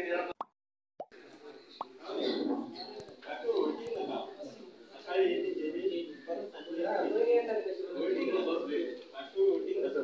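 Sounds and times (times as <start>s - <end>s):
faint room murmur: 1.1s - 10.0s.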